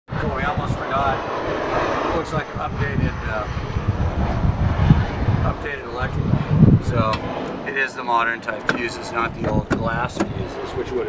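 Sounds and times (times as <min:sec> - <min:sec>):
man talking: 0:00.1 - 0:03.6, 0:05.4 - 0:11.0
low thumps: 0:00.4 - 0:07.6.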